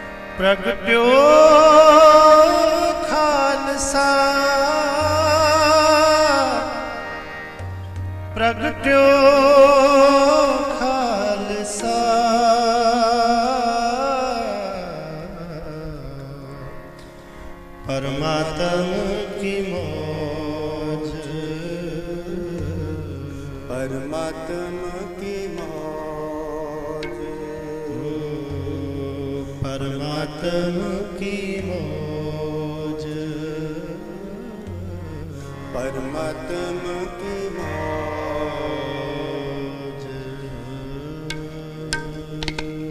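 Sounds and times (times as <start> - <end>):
person chanting: 0.0 - 17.0, 17.8 - 42.9
harmonium chords: 0.0 - 42.9
man singing: 0.3 - 7.6, 8.3 - 16.9, 17.8 - 42.9.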